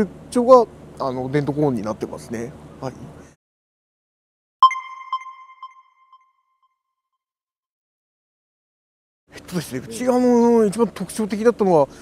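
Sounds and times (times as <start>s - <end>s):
bright electronic chime: 4.6s - 6.7s.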